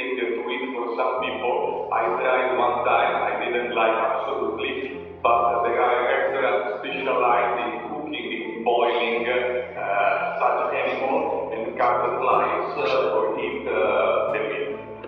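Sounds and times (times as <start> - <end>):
man talking: 0.0 - 15.0.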